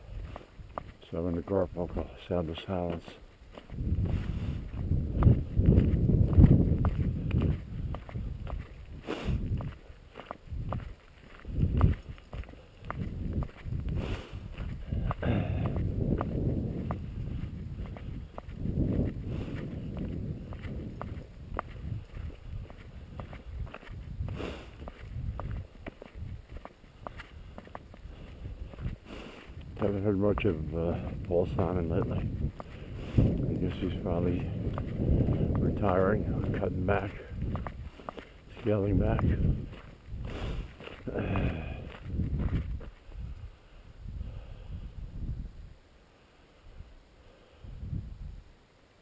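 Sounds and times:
footsteps on gravel: 0.0 - 43.2
wind rumble on microphone: 0.0 - 45.8, 46.6 - 48.6.

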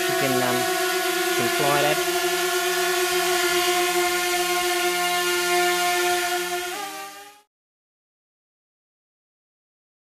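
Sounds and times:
drone buzzing: 0.0 - 7.5.

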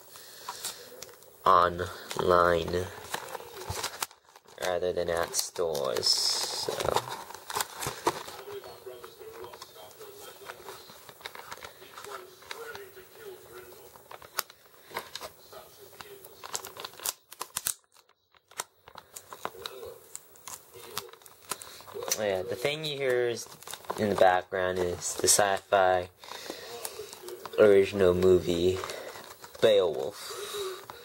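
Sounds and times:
plastic packaging crinkling: 0.1 - 31.0
cardboard packaging tearing: 1.6 - 31.0
faint film dialogue: 7.8 - 16.6.

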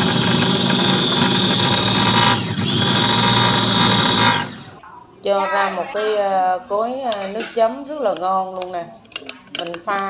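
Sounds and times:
electric food chopper whining: 0.0 - 4.8.

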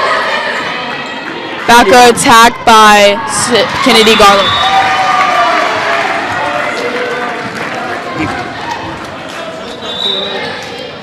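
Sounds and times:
crowd calling out and talking: 0.0 - 11.0.

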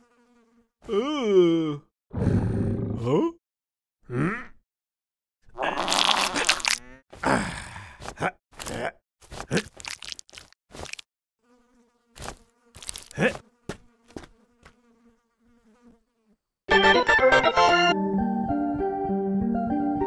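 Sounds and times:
fly buzzing: 0.0 - 0.8, 10.0 - 16.6.

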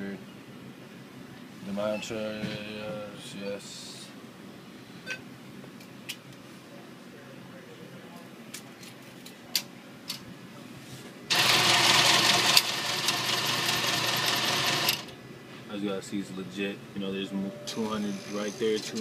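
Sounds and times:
cash dispenser mechanical whirring: 11.3 - 15.1.

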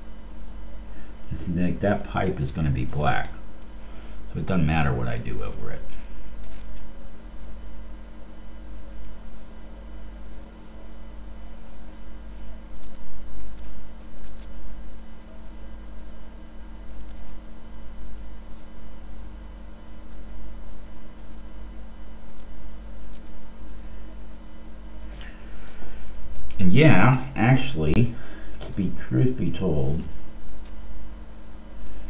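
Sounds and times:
electrical mains hum: 0.0 - 32.0
faint high buzz: 0.0 - 32.0.

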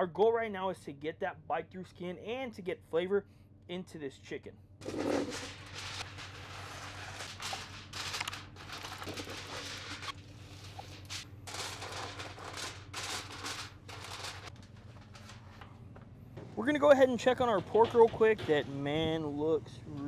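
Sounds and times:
aluminum foil crinkling: 4.8 - 15.6.

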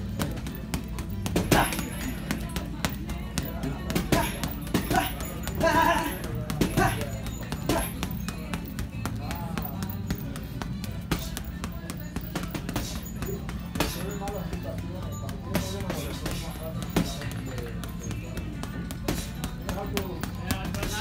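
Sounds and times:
background music with singing: 0.0 - 21.0
boxing gloves hitting a bag: 0.0 - 21.0.

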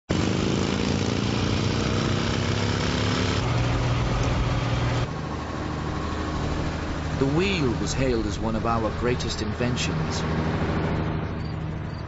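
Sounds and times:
road noise: 0.1 - 12.0
vehicle engine running: 0.1 - 12.0.

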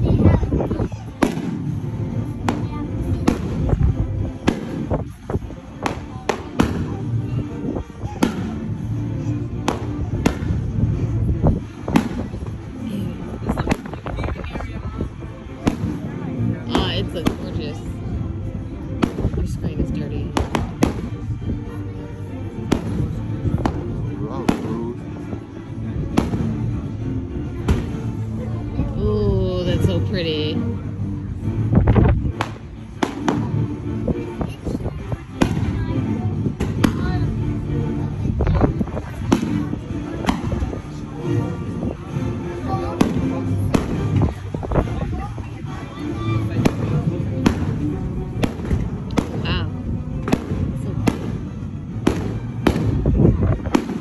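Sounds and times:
fireworks bangs: 50.3 - 54.0.

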